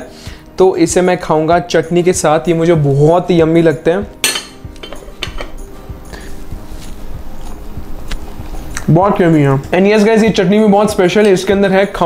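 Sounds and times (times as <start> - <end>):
ceramic dishes clinking: 4.2 - 5.6.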